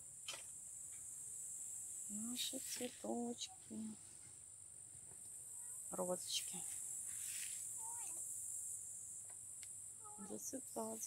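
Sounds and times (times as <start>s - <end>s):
high-pitched insect chirring: 0.0s - 3.9s, 5.2s - 11.0s.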